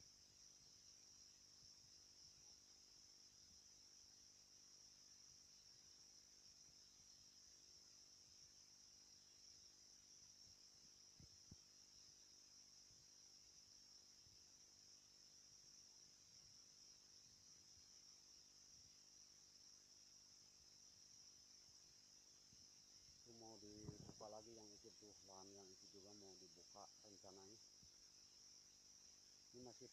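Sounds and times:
insects chirring: 0.0s - 29.9s.

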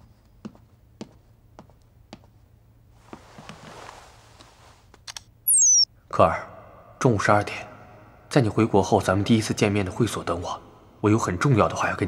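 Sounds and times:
phone notification tones: 5.5s - 5.9s.

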